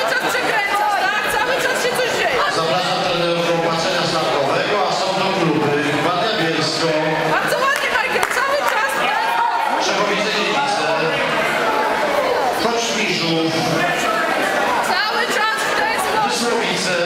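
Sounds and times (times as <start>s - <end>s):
crowd chatter in large hall: 0.0s - 17.0s.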